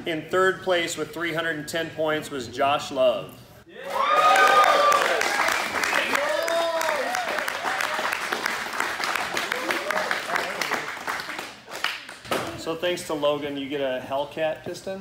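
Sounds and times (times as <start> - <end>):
cheering whoops and shouts: 3.7 - 8.2
group applauding: 3.8 - 12.3.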